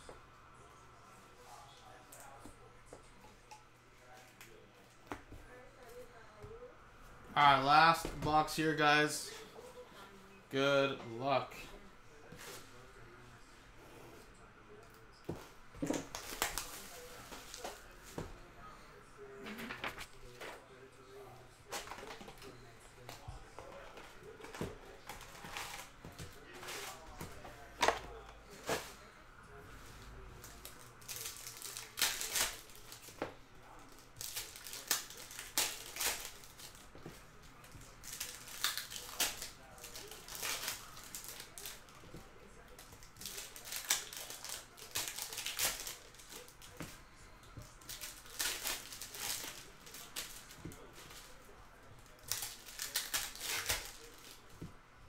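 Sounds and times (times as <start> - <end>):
foil wrappers tearing and crinkling: 16.0 - 17.8, 30.4 - 36.9, 37.6 - 42.0, 42.6 - 46.8, 47.8 - 51.4, 52.1 - 54.4.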